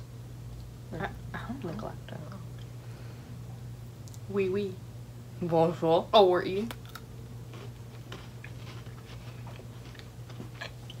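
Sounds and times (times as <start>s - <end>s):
low steady hum: 0.0s - 11.0s
pretzel sticks crunching: 6.7s - 11.0s.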